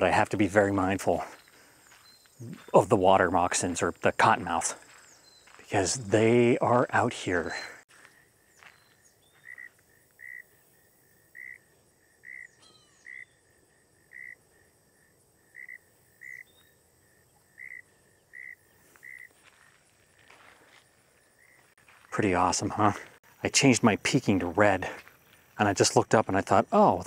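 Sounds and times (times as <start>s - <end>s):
high insect hum: 0.0s - 27.0s
insect chirp: 0.1s - 27.0s.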